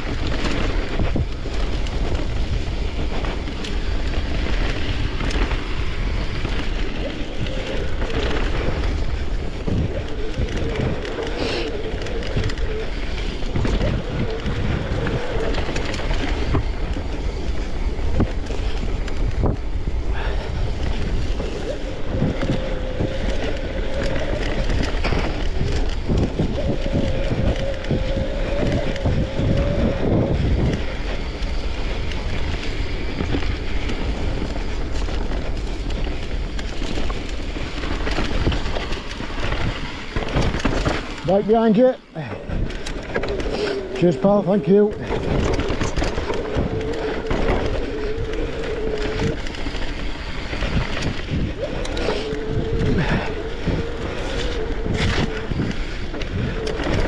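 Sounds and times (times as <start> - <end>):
bike tyre rumble: 0.0 - 57.0
wind on microphone: 0.0 - 57.0.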